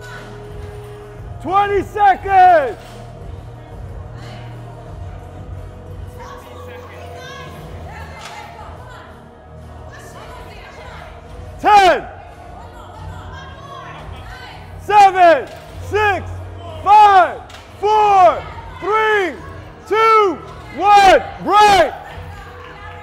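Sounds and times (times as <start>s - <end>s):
person shouting encouragement: 16.9s - 22.0s.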